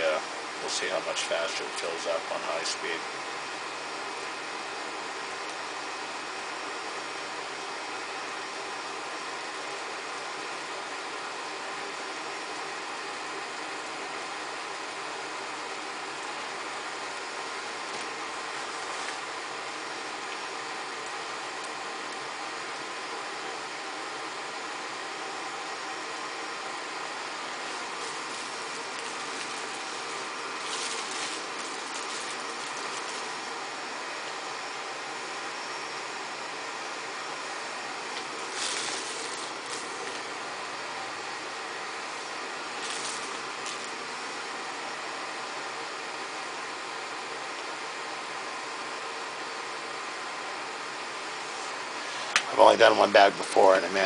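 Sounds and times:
fan running: 0.0s - 54.0s
plastic bag rustling: 27.6s - 33.4s, 38.2s - 40.3s, 42.8s - 44.0s.

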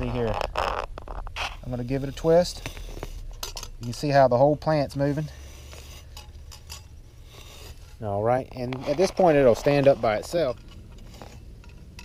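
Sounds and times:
faint scrapes and clicks: 0.0s - 4.0s, 5.2s - 8.0s, 8.6s - 12.0s
steady low rumble: 0.0s - 12.0s.

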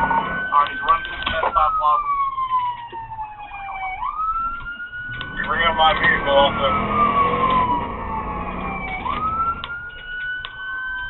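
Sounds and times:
police siren wailing: 0.0s - 11.0s.

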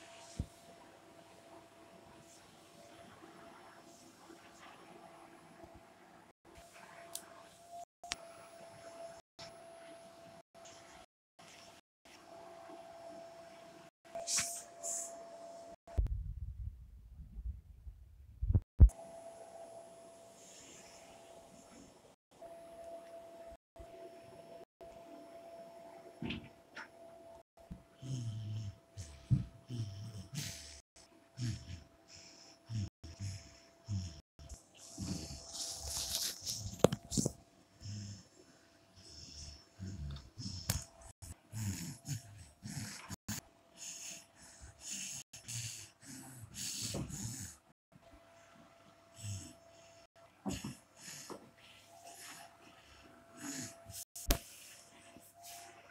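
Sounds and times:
dogs grunting and snorting: 27.9s - 35.9s, 39.0s - 44.2s.

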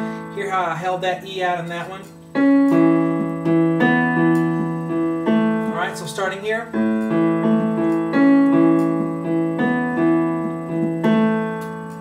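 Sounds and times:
piano riff: 0.0s - 12.0s.

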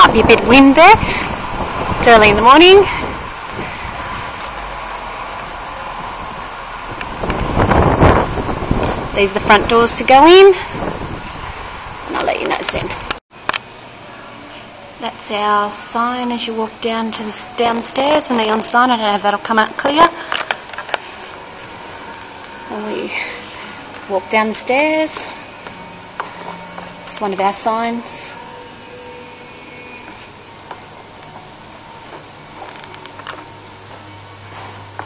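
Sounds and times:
wind on microphone: 0.0s - 12.2s
steady background hum: 0.0s - 35.0s.

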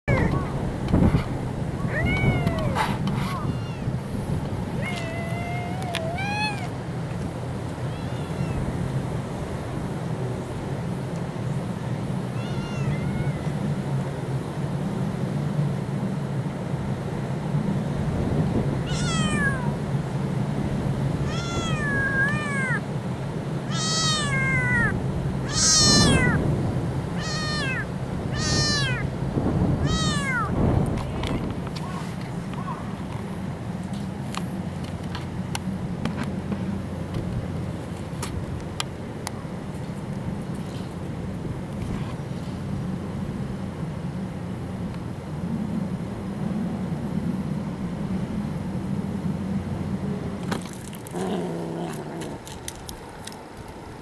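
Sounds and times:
kitten meowing: 1.8s - 3.9s, 4.8s - 6.7s, 7.9s - 8.6s, 12.4s - 13.5s, 18.8s - 19.8s, 21.2s - 22.8s, 23.7s - 26.4s, 27.2s - 29.1s, 29.8s - 30.6s.

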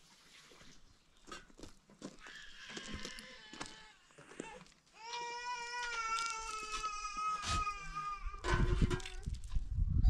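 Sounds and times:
goat bleating: 2.2s - 4.6s.

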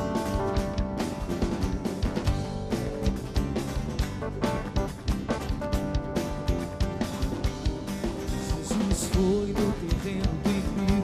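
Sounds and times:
drum kit beat: 0.0s - 11.0s
electric guitars: 0.0s - 11.0s.

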